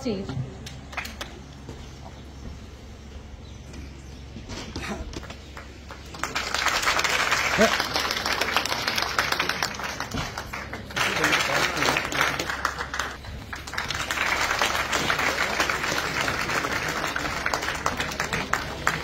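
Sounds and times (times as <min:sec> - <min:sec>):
voices: 0:00.0 - 0:19.0
audience applauding: 0:05.2 - 0:19.0.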